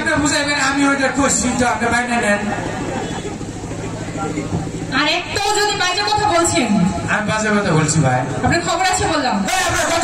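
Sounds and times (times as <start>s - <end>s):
sound system hum: 0.0s - 10.0s.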